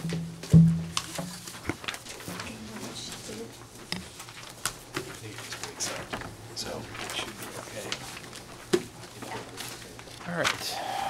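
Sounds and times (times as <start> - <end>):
papers and objects clicking: 0.9 - 10.6.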